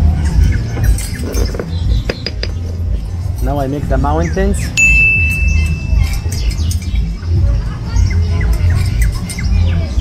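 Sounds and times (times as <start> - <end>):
bird chirping: 4.0 - 7.2.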